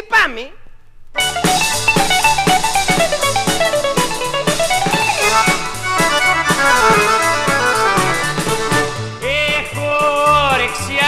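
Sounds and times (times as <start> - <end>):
plucked string band playing: 1.2 - 9.5.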